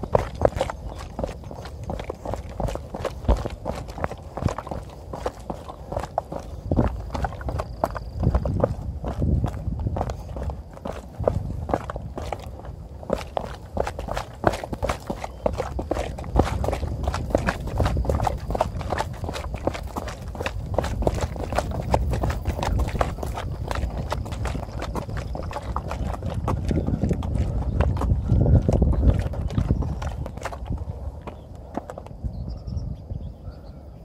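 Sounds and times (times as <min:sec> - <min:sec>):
running footsteps on concrete: 0:00.0 - 0:32.3.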